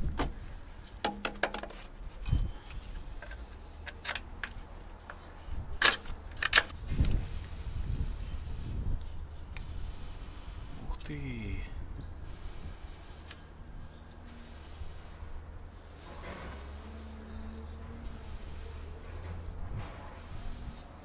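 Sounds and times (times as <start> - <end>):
metallic clinks of wrench and parts: 2.2 - 4.3.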